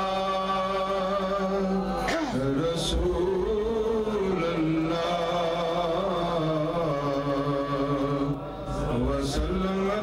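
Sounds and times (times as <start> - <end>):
man chanting unaccompanied: 0.0 - 10.0.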